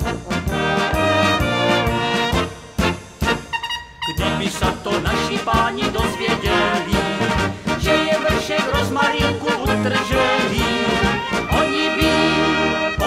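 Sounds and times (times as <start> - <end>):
brass band music: 0.0 - 13.0.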